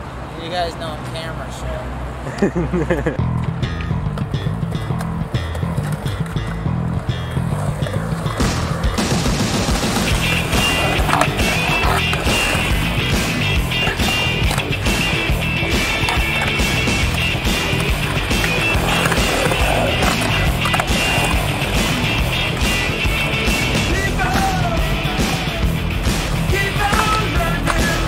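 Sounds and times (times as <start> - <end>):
skateboard wheels rolling on concrete: 0.0 - 28.0
background music: 3.2 - 28.0
skateboard clacks: 3.4 - 28.0.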